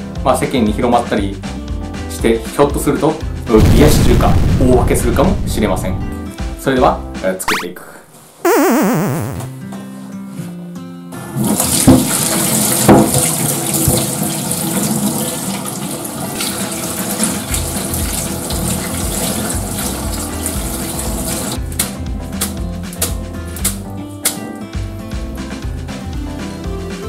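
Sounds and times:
tap water running into strainer: 11.8s - 21.5s.

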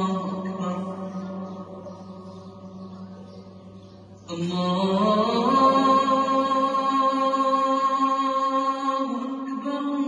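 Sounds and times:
chant-like singing: 0.0s - 3.5s, 4.2s - 10.0s.

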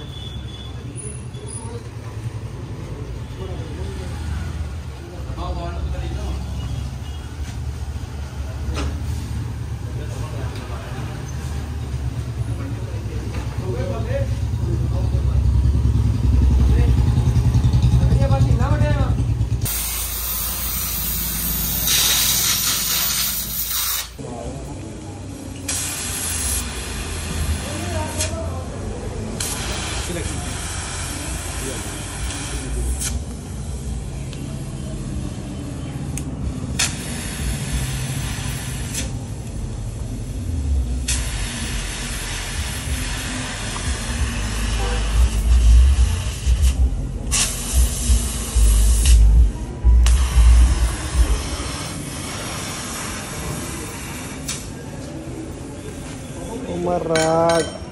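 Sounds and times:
gas welding torch hissing: 19.6s - 24.2s, 25.3s - 55.0s.

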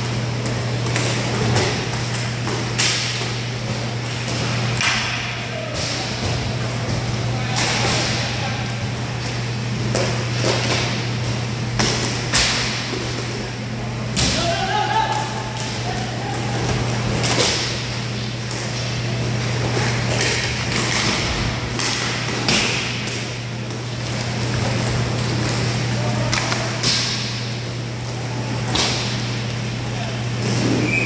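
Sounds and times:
steady electrical hum: 0.0s - 31.0s
hockey sticks and puck clacking: 0.4s - 8.3s, 9.2s - 13.4s, 14.2s - 27.4s
puck hitting boards: 9.8s - 11.0s, 19.6s - 23.3s.

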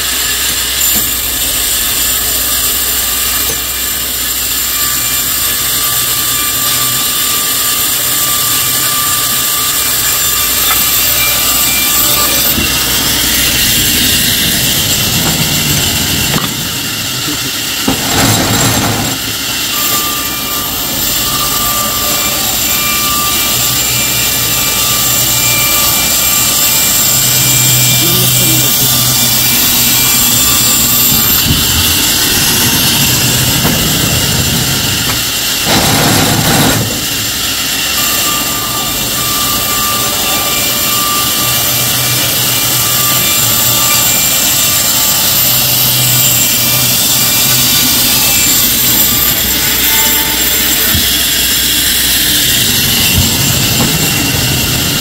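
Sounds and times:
band saw cutting log: 0.0s - 55.0s.

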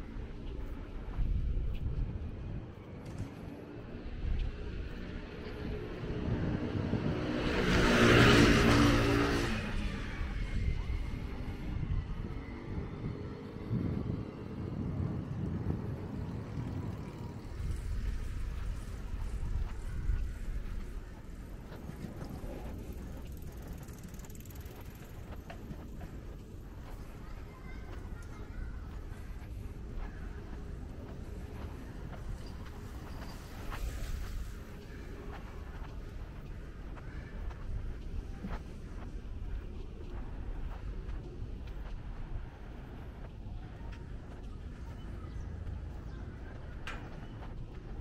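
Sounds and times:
distant traffic rumble: 0.0s - 48.0s
vehicle passing by: 4.7s - 11.9s.

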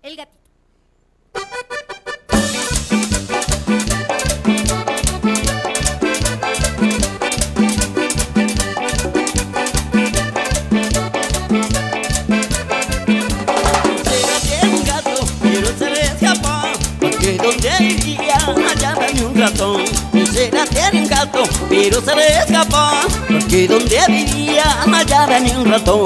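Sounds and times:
accordion: 1.3s - 26.0s
live cumbia band playing: 1.4s - 26.0s.

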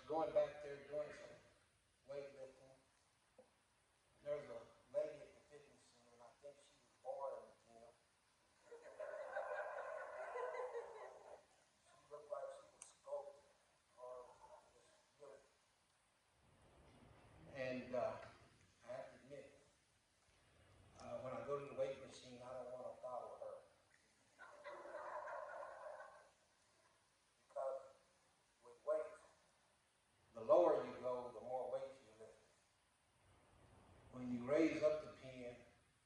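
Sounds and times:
high-pitched laughter: 8.6s - 11.6s, 24.4s - 26.4s.

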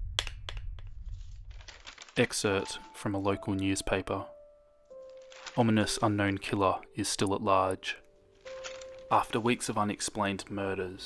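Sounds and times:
sharp cracks: 0.0s - 2.4s
fine crackling: 1.1s - 4.1s, 4.9s - 11.0s.

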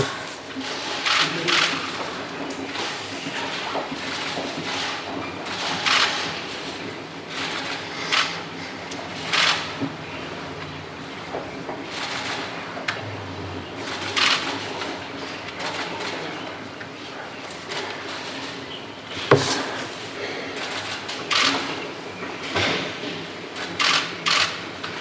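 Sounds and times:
low room murmur: 0.0s - 25.0s.

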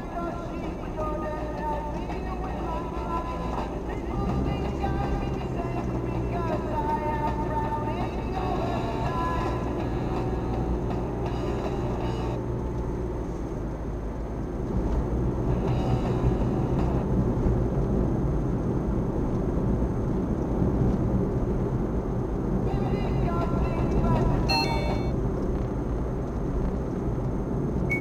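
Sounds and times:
faint car radio music: 0.0s - 12.7s, 22.7s - 25.2s
car road and engine rumble: 0.0s - 28.0s.

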